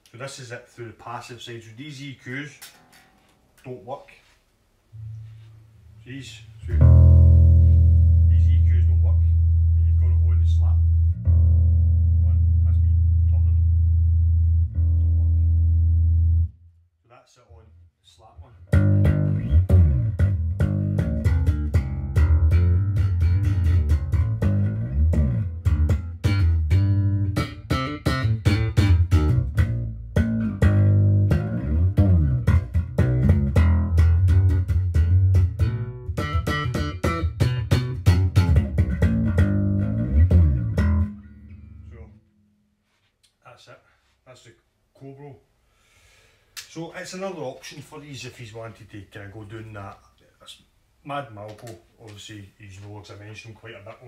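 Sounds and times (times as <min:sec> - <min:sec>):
slap electric bass riffing: 0:06.6 - 0:16.5, 0:18.6 - 0:42.2.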